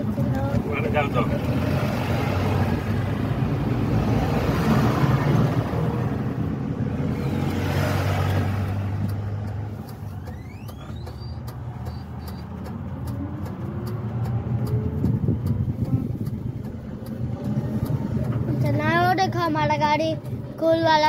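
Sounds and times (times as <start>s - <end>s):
road and wind noise: 0.0s - 21.0s.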